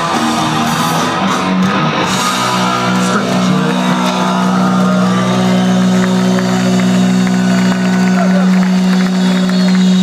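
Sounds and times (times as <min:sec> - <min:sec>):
electric guitar and bass droning: 0:00.0 - 0:10.0.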